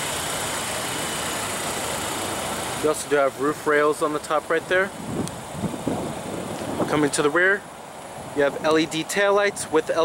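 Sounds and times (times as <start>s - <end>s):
wind buffeting microphone: 5.0s - 7.1s.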